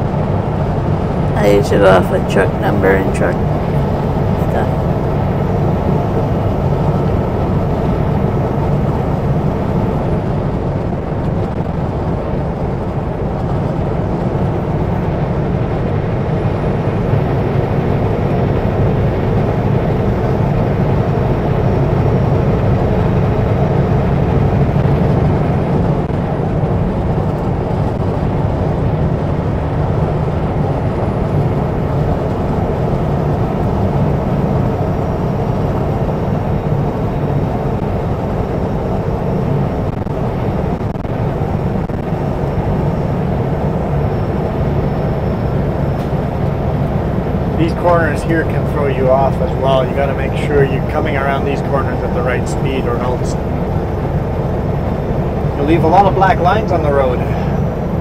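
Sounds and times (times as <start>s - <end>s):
truck engine drone: 0.0s - 58.0s.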